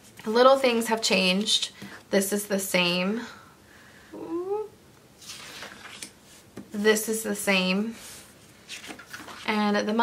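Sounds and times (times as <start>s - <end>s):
paper page turning: 5.2s - 6.2s, 8.6s - 9.5s.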